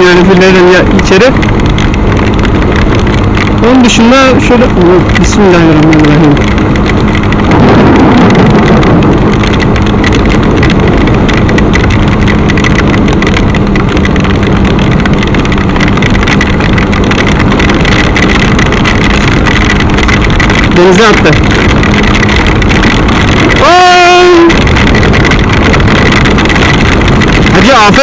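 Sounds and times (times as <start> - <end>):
motorcycle engine hum: 0.0 - 28.0
rain: 0.0 - 28.0
wind rushing: 0.0 - 28.0.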